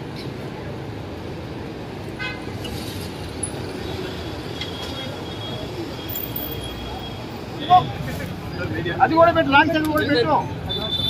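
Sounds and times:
traffic rumble: 0:00.0 - 0:11.0
crowd chatter: 0:03.8 - 0:11.0.

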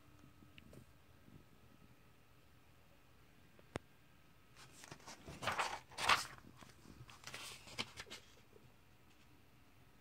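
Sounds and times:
page turning paper rustle: 0:04.6 - 0:08.5.

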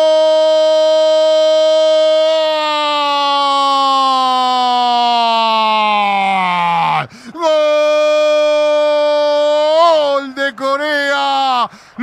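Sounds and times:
man shouting long goal cry: 0:00.0 - 0:12.0.

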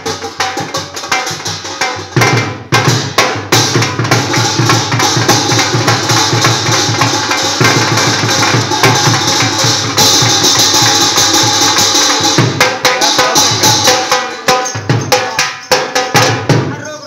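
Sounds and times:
brighter percussion layer: 0:00.0 - 0:17.0
drum beaten fast: 0:00.0 - 0:17.0.

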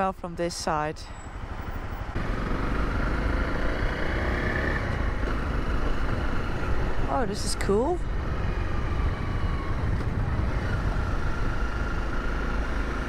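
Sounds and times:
wind and road noise: 0:00.0 - 0:13.0
motorcycle engine riding: 0:02.1 - 0:13.0.

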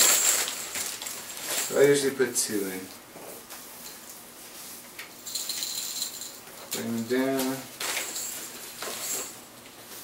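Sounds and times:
small metal bells ringing: 0:05.3 - 0:07.2.

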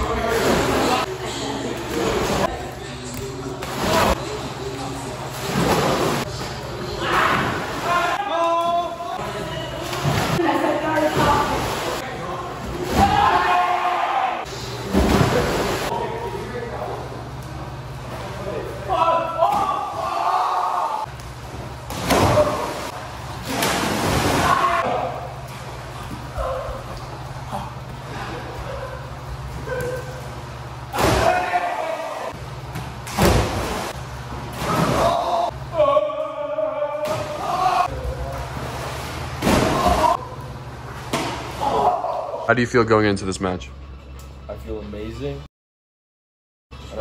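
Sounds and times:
people shouting: 0:06.9 - 0:09.7, 0:12.8 - 0:14.7, 0:18.8 - 0:21.1, 0:21.9 - 0:25.4, 0:26.3 - 0:32.4, 0:34.6 - 0:38.6, 0:39.4 - 0:40.5, 0:41.1 - 0:42.5
young men shouting: 0:12.8 - 0:14.5, 0:18.8 - 0:21.1, 0:31.0 - 0:32.4, 0:34.8 - 0:38.2, 0:39.6 - 0:40.4, 0:41.5 - 0:42.5
splash into pool: 0:14.9 - 0:15.9, 0:21.9 - 0:24.9, 0:33.1 - 0:35.4, 0:38.4 - 0:40.2.

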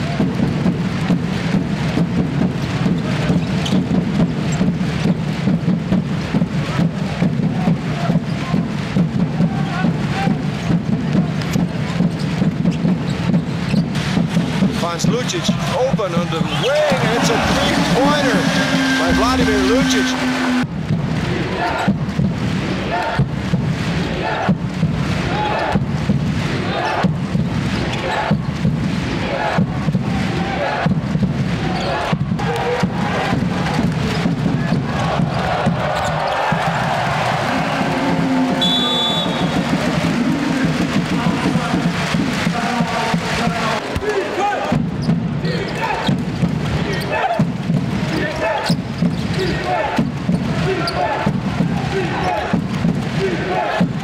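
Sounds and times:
arena music: 0:14.0 - 0:20.7, 0:35.0 - 0:42.8
crowd chanting: 0:15.1 - 0:22.0, 0:22.6 - 0:23.3, 0:23.9 - 0:25.8, 0:26.5 - 0:27.1, 0:27.8 - 0:44.8, 0:48.1 - 0:54.0.

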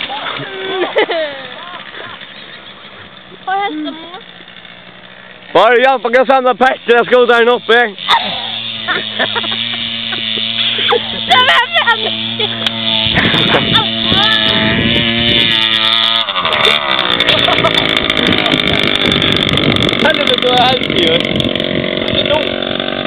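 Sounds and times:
scooter engine running: 0:00.0 - 0:23.0.

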